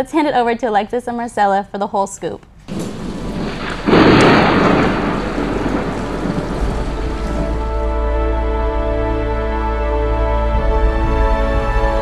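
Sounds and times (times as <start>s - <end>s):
thunderclap and rumbling: 2.7s - 9.1s
heavy rain: 2.7s - 9.6s
music: 6.4s - 12.0s.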